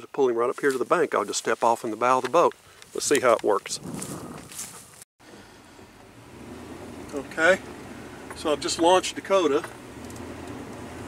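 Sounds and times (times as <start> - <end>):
wind and movement outdoors: 0.0 - 11.0
engine hum inside truck cab: 5.2 - 11.0.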